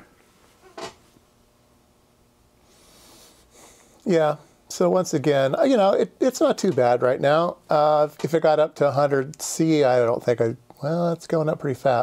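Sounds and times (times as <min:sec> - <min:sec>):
faint hiss: 0:02.5 - 0:12.0.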